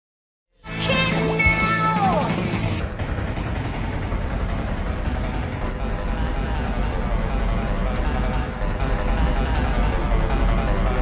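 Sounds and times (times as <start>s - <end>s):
jumble of cartoon voices and music: 0.7s - 2.6s.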